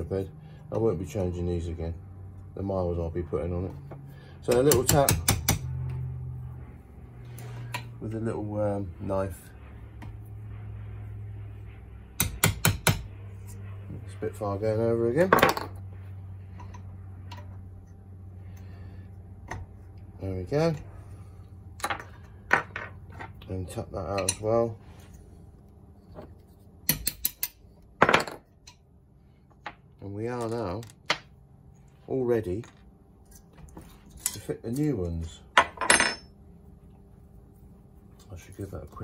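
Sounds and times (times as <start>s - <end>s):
steady low hum: 0.0s - 39.0s
hammer tapping metal: 4.5s - 5.8s, 12.2s - 13.1s, 26.9s - 27.6s.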